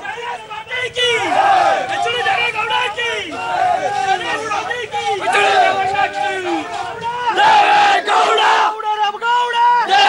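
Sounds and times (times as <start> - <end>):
crowd of men shouting slogans: 0.0 - 10.0.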